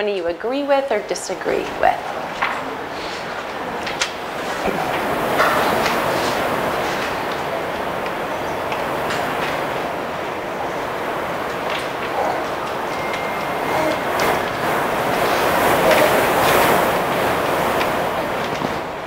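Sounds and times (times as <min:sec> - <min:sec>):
large room background noise: 0:00.0 - 0:19.0.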